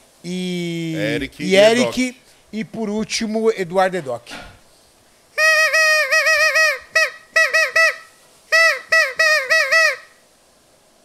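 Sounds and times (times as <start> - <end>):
handheld horn tooting: 5.4 - 10.0.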